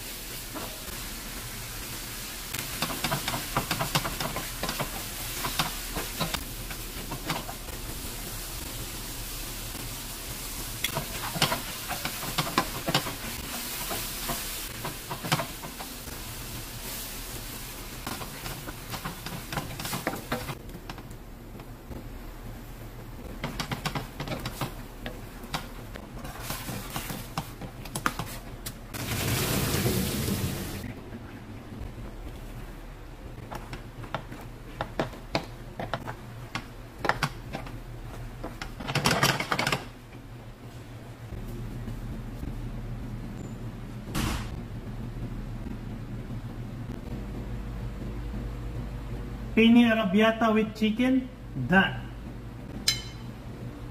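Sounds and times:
wooden spatula scraping a pan: 26.2 - 28.5.

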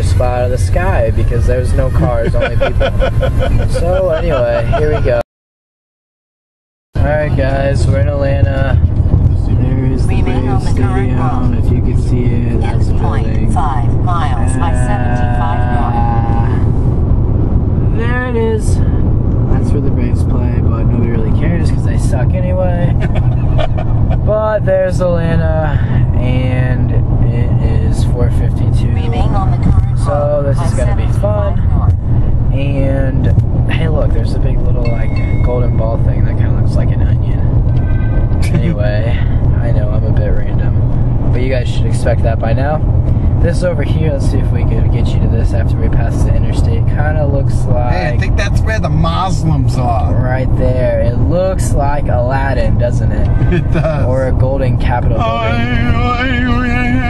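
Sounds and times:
car road noise rumble: 0.0 - 5.2, 7.0 - 57.0
singing with music: 55.2 - 57.0.

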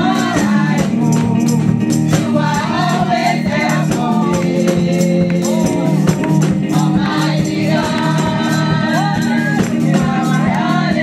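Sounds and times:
percussion hits: 0.0 - 11.0
women singing gospel: 0.0 - 11.0.

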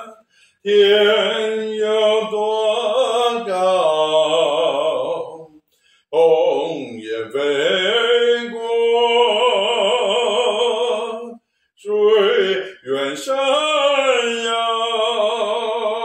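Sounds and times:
man singing unaccompanied: 0.0 - 16.0.

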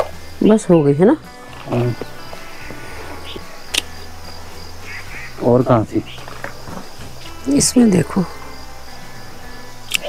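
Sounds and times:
high-pitched insect trill: 0.0 - 10.0.

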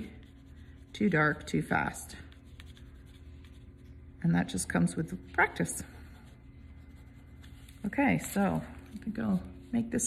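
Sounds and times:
pencil sketching on paper: 0.0 - 3.9.

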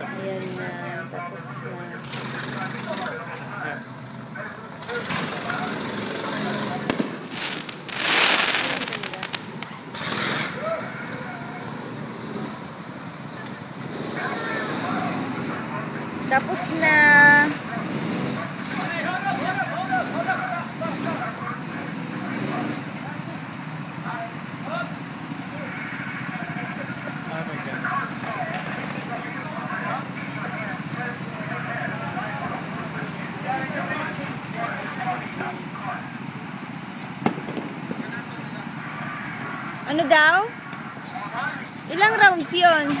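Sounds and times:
low engine rumble: 0.0 - 13.8
indistinct chatter: 0.0 - 43.0.

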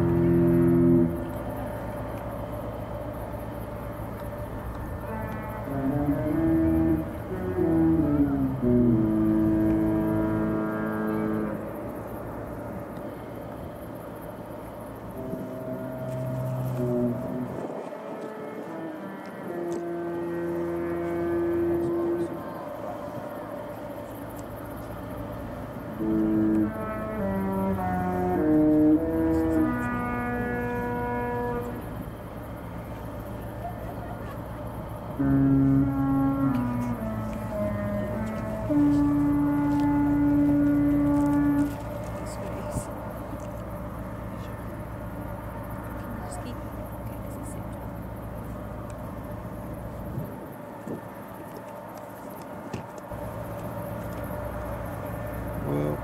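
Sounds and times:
ship horn playing a tune: 0.0 - 51.4, 53.1 - 56.0.

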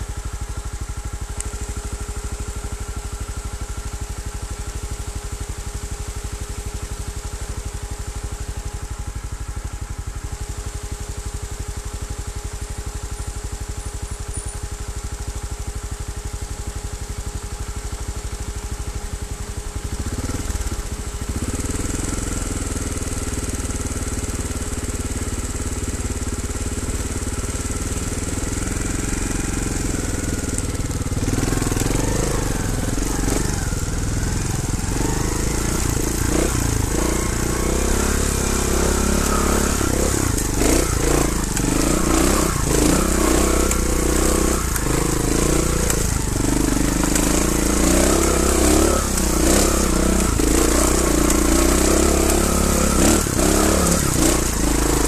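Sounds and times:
motorcycle engine idling and revving: 0.0 - 55.0.

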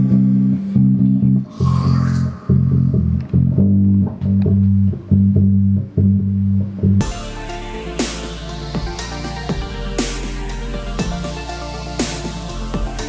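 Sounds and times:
electric bass riff: 0.0 - 13.0.

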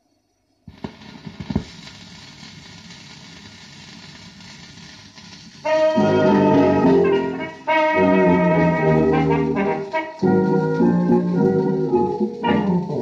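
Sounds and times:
record surface hiss and crackle: 0.0 - 13.0
stylus thumps landing on record: 0.7 - 1.7
dance band with brass: 5.6 - 13.0.

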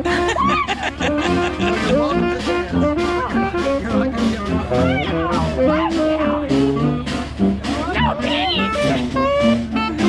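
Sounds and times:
jazz band playing: 0.0 - 10.0
saxophone: 0.0 - 10.0
trumpet: 0.0 - 10.0.

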